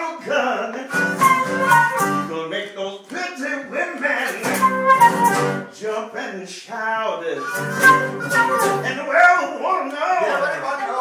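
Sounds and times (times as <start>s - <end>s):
blues flute: 0.9s - 2.4s, 4.3s - 5.7s, 7.4s - 9.6s
guitar accompaniment: 0.9s - 2.4s, 4.2s - 5.8s, 7.4s - 9.1s.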